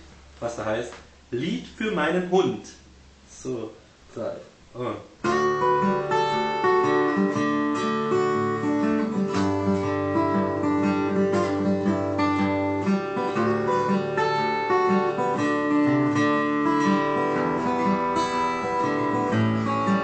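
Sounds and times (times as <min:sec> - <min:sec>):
acoustic guitar playing: 0:05.2 - 0:20.0.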